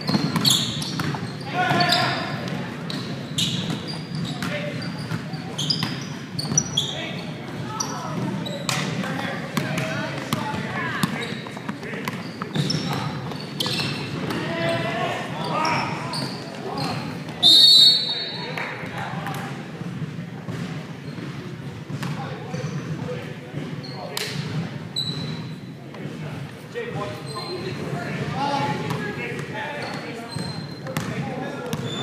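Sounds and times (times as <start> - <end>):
sneaker squeaks: 0.0 - 18.6, 20.5 - 25.8, 26.9 - 32.0
basketball bouncing: 0.1 - 1.9, 19.3 - 22.2, 30.4 - 31.9
referee whistle: 17.4 - 18.4.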